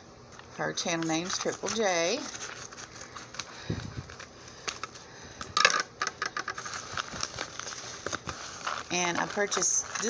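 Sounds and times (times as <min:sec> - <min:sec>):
plastic envelope crinkling: 0:06.4 - 0:10.0.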